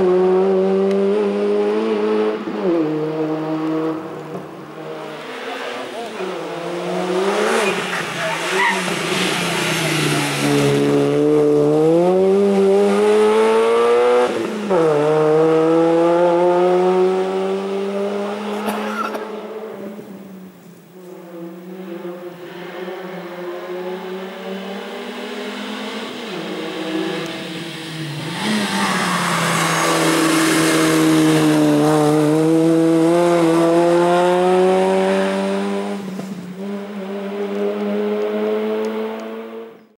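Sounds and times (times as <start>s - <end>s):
car engine revving hard: 0.0s - 19.8s, 21.7s - 39.8s.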